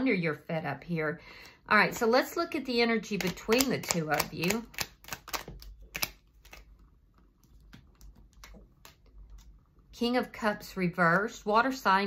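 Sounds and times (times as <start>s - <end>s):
cards shuffled by hand: 3.1s - 6.8s.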